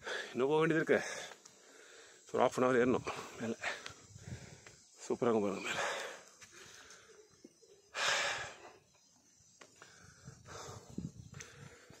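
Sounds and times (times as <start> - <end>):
person breathing hard: 1.0 - 2.3, 3.0 - 4.8, 7.9 - 8.8, 9.8 - 12.0.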